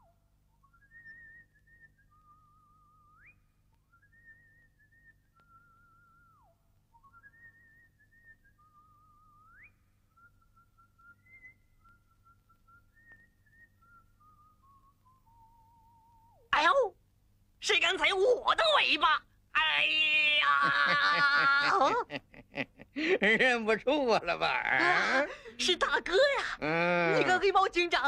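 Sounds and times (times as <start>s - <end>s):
faint whistled tune: 0.0s - 16.5s.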